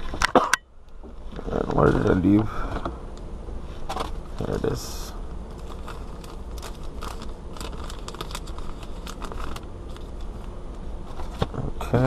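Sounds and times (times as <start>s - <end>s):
low steady hum: 0.0s - 12.0s
wrapper crinkling and tearing: 5.5s - 10.5s.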